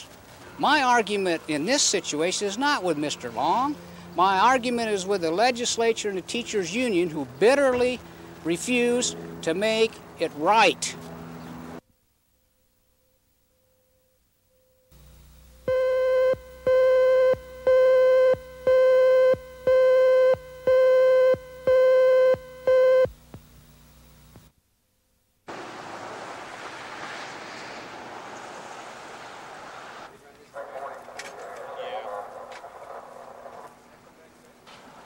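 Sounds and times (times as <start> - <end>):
steady hiss: 0.0 - 11.0, 14.9 - 16.8, 25.5 - 35.0
low hum: 12.8 - 24.5.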